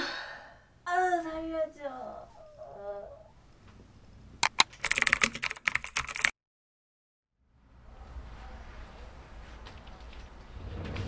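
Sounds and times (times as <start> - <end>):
computer keyboard typing: 4.4 - 6.3.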